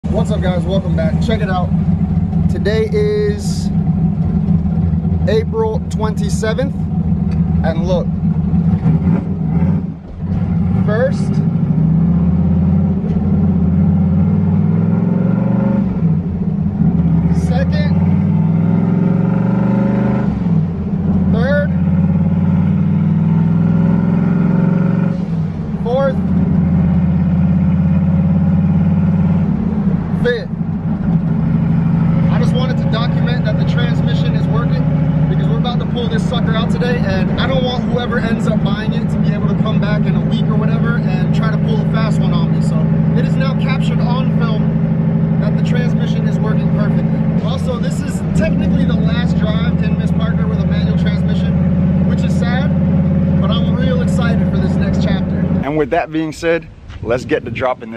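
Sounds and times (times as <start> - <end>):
car engine running: 0.0 - 57.9.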